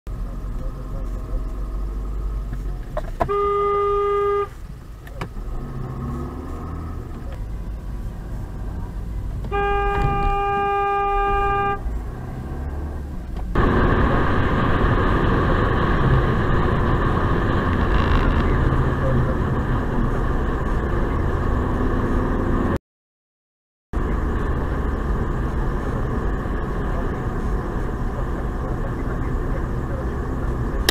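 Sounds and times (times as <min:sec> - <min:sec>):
car rumble from inside: 0:00.1 - 0:22.8, 0:24.0 - 0:30.9
road and tyre noise: 0:00.1 - 0:22.8, 0:23.9 - 0:30.9
car horn: 0:03.2 - 0:04.6, 0:09.4 - 0:11.9.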